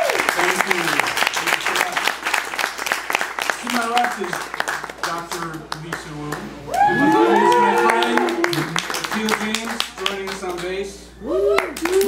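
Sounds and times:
audience clapping: 0.0s - 10.9s, 11.5s - 12.0s
voices cheering: 6.6s - 9.4s
whoops: 6.7s - 8.8s, 11.2s - 12.0s.

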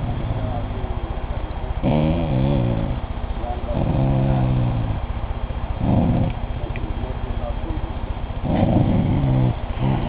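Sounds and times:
dog moaning growl: 0.0s - 0.7s, 1.8s - 3.1s, 3.7s - 5.1s, 5.8s - 6.5s, 8.4s - 10.0s.

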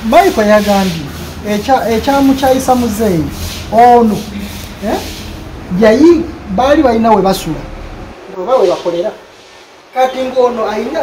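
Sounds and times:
person's voice: 0.0s - 7.7s
low background noise: 0.0s - 11.0s.

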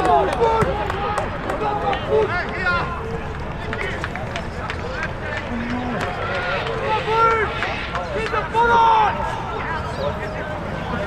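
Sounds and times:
people shouting and calling: 0.0s - 4.1s, 4.7s - 11.0s
sideline chatter: 0.0s - 11.0s.

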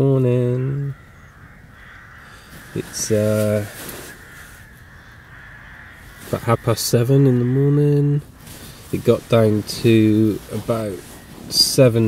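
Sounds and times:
crows cawing: 0.0s - 12.0s
steady background hiss: 0.0s - 12.0s.

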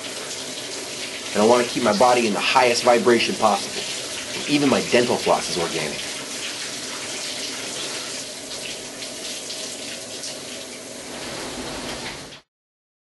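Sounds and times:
shower water running: 0.0s - 12.5s.

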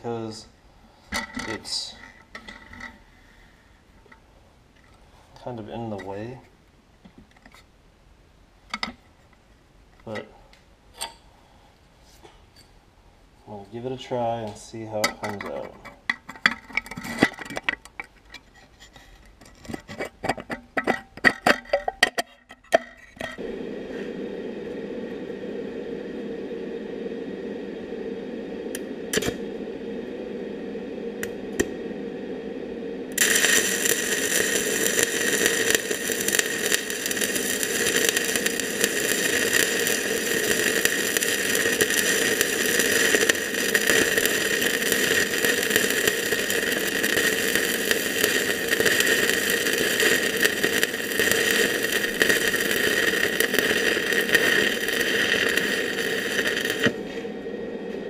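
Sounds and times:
welding arc crackling hiss: 23.2s - 58.0s.

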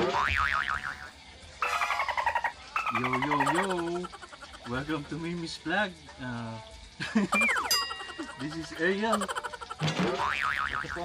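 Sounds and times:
springy boing with wobbling pitch: 0.0s - 3.6s, 7.4s - 11.0s
bright buzzy pitched tone: 7.4s - 11.0s.

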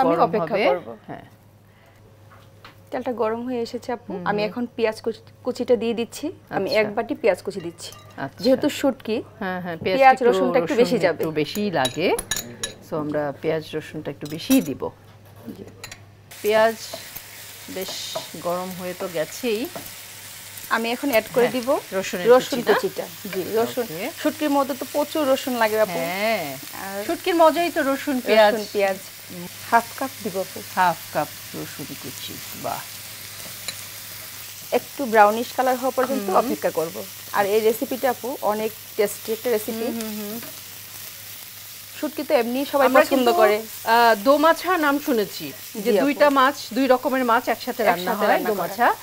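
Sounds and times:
woman talking: 0.0s - 1.3s, 2.9s - 12.2s, 12.8s - 15.0s, 17.7s - 19.8s, 20.7s - 32.9s, 34.7s - 40.5s, 42.0s - 49.0s
onions sizzling in a frying pan: 2.8s - 9.2s, 16.3s - 49.0s.

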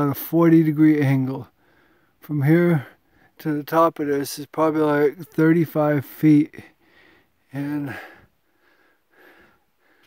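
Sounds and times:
person breathing quickly: 1.6s - 2.2s, 6.7s - 10.0s.

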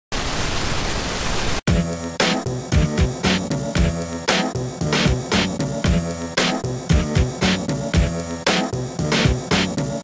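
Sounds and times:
television static hiss: 0.1s - 1.6s
music with a beat: 1.7s - 10.0s.

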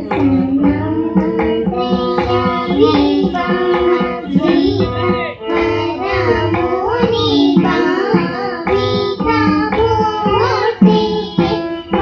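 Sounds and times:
girls singing together: 0.0s - 12.0s
hand drum strokes: 0.0s - 12.0s
string instrument: 0.0s - 12.0s.

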